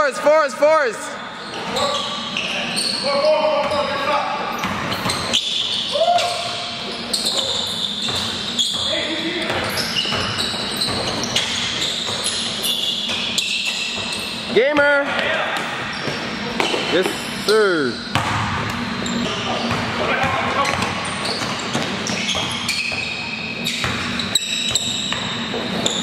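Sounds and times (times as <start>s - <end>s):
players' voices echoing: 0.0s - 5.0s, 8.8s - 10.0s, 14.4s - 21.7s
basketball bouncing on court: 4.5s - 17.2s, 18.0s - 26.0s.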